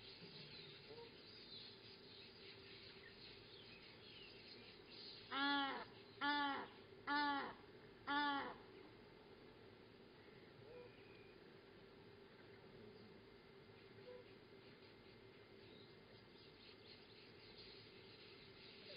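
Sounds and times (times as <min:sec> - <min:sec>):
bird calling: 0:03.8 - 0:08.6, 0:10.6 - 0:11.4.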